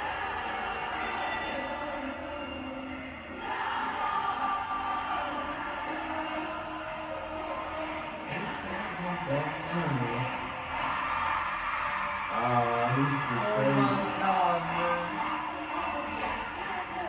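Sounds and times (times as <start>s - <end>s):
crowd singing and chanting: 0.0s - 17.0s
music: 0.0s - 17.0s.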